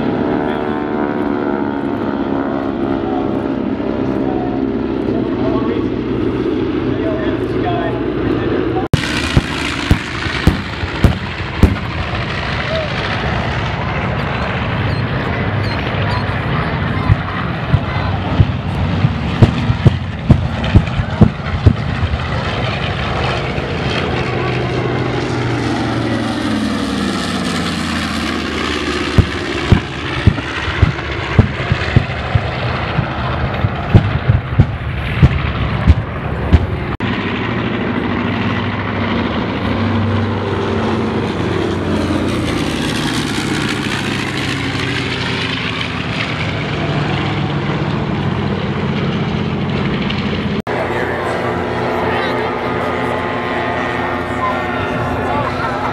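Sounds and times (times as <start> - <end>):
propeller airplanes flying past: 0.0 - 55.9
pyrotechnic booms: 9.0 - 13.7, 17.0 - 22.6, 29.0 - 37.2.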